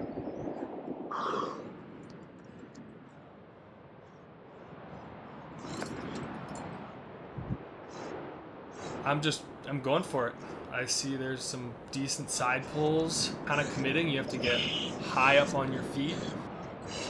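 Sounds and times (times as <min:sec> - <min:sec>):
rushing air: 0:04.7 - 0:17.0
breathy exhales: 0:16.1 - 0:17.0.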